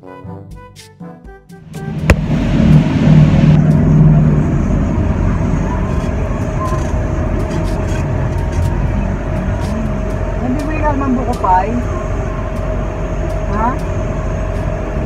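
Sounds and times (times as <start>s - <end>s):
engine and road rumble: 1.6s - 15.0s
faint constant hum: 1.7s - 15.0s.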